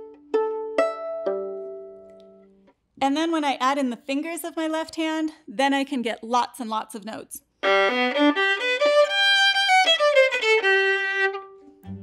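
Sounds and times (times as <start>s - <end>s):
violin strings plucked pizzicato: 0.0s - 2.7s, 7.6s - 12.0s.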